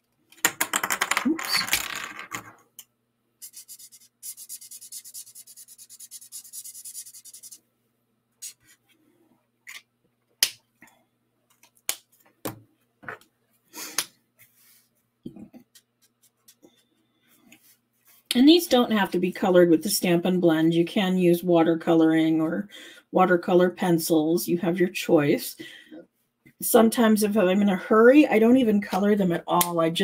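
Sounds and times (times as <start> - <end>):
marker scribbling on cardstock: 3.4 - 7.6.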